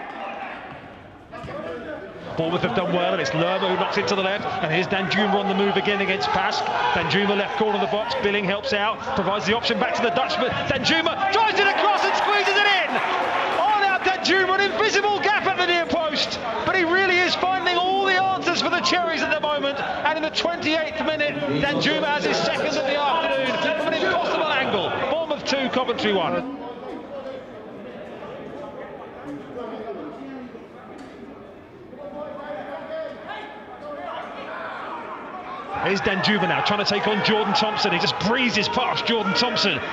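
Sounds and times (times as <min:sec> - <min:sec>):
people shouting and calling: 0:01.4 - 0:26.4, 0:32.4 - 0:39.9
man commentating: 0:01.8 - 0:26.4, 0:35.7 - 0:39.9.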